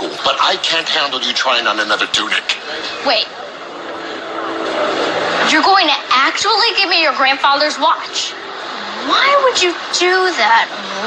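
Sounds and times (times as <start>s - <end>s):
steady droning noise: 0.0s - 11.0s.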